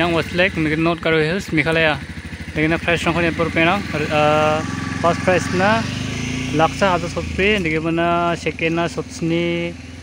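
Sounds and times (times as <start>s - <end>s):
person speaking: 0.0s - 5.9s, 6.5s - 9.8s
small engine running: 0.0s - 10.0s.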